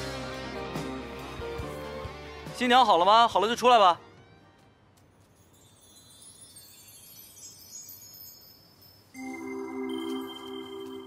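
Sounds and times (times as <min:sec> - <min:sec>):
high-pitched shimmering chimes: 0:05.4 - 0:11.0.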